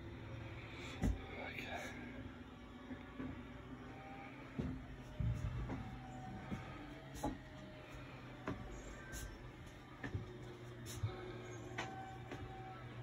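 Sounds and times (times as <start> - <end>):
low steady hum: 0.0 - 13.0
soft knocks and bumps: 4.5 - 9.2, 9.8 - 12.7.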